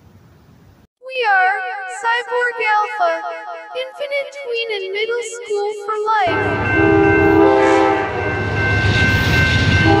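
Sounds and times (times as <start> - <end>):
sustained horn-like chord: 6.3 - 8.7, 9.8 - 10.0.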